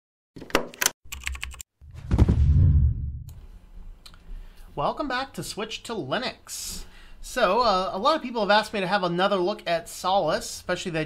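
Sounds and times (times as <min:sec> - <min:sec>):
loud deep thud: 0:01.9 - 0:03.3.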